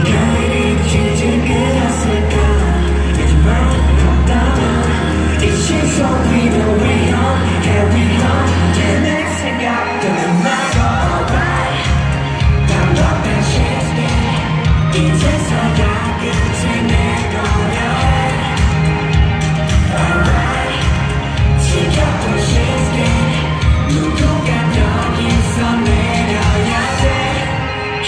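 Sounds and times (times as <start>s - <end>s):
male singer singing: 0.0s - 28.0s
pop backing track with heavy bass: 0.0s - 28.0s.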